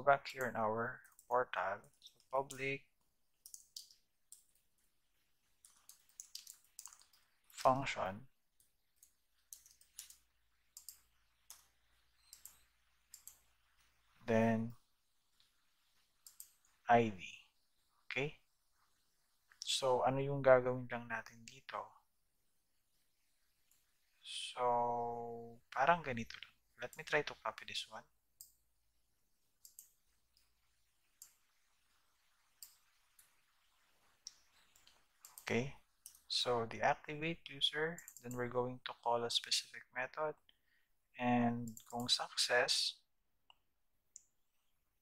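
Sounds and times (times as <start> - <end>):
computer keyboard keystrokes: 3.4 - 4.5, 5.6 - 7.2, 9.5 - 10.2
mouse and keyboard clicks: 5.6 - 7.3, 10.8 - 13.5.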